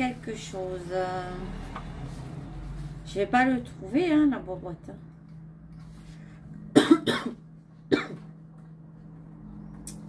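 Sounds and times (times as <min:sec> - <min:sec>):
woman coughing: 0:06.7 - 0:08.3.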